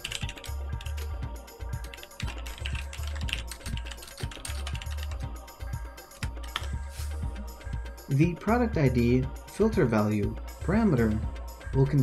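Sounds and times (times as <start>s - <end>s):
typing on a computer keyboard: 0.0s - 1.0s, 1.8s - 5.2s.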